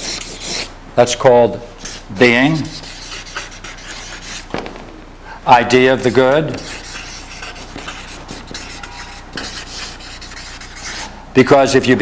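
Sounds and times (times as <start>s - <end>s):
marker scratching on paper: 0.0s - 0.7s, 1.8s - 4.5s, 6.1s - 11.1s
steady low hum: 0.0s - 12.0s.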